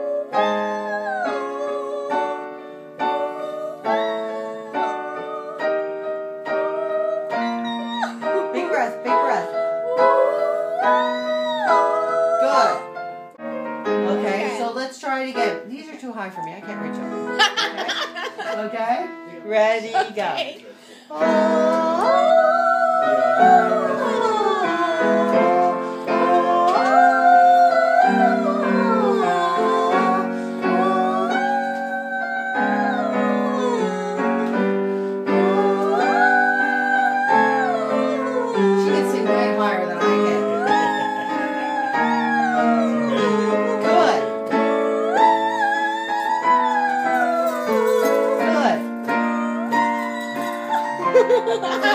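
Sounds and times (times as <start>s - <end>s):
woman singing: 0.0s - 13.0s, 21.0s - 51.9s
instrumental accompaniment: 0.0s - 51.9s.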